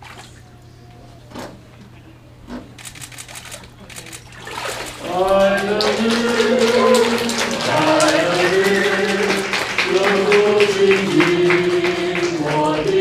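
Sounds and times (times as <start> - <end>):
soft water splashing: 0.0 - 0.6, 2.8 - 5.6
group of voices singing: 5.0 - 13.0.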